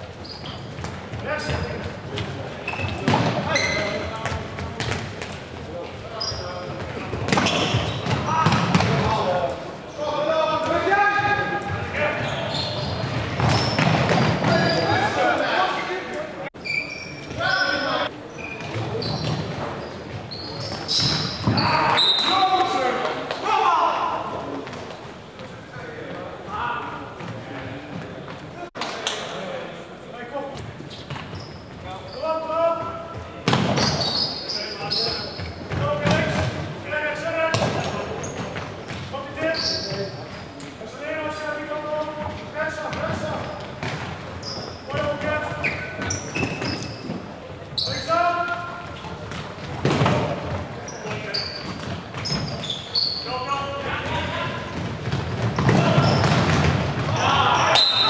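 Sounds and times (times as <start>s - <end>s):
players shouting in a hall: 21.5s - 24.6s, 57.0s - 58.0s.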